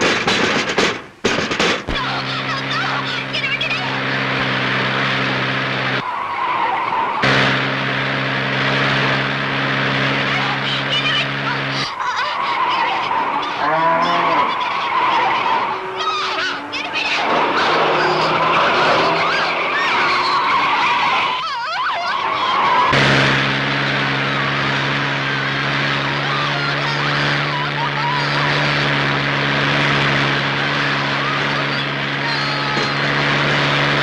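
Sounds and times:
car engine running: 0.0s - 34.0s
tyre squeals: 11.5s - 23.0s.

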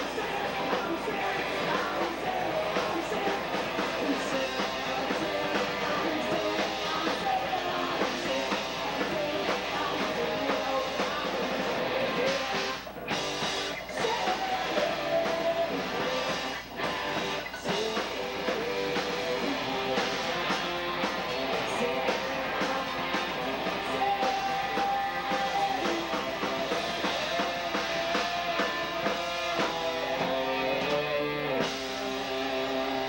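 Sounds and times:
person singing: 0.0s - 12.8s, 13.8s - 33.0s
drums: 0.0s - 33.0s
electric guitars: 0.0s - 33.0s.

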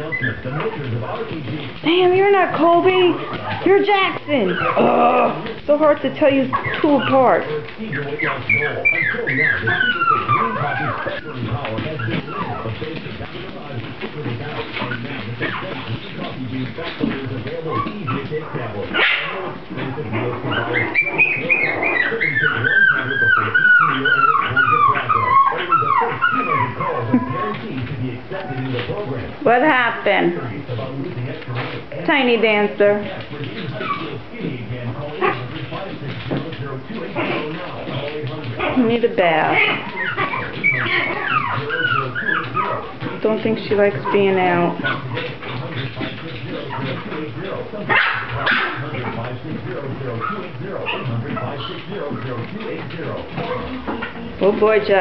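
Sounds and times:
puppies whimpering: 0.0s - 55.0s
woman's voice: 1.8s - 7.5s, 29.4s - 30.4s, 32.0s - 33.0s, 38.8s - 39.7s, 43.2s - 44.8s, 54.4s - 55.0s.

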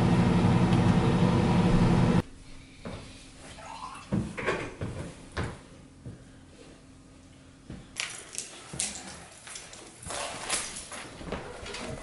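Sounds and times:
microwave oven humming: 0.0s - 2.2s.

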